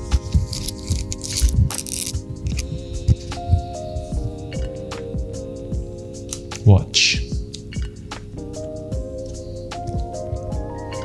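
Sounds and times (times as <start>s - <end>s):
background music with pulsing beat: 0.0s - 11.0s.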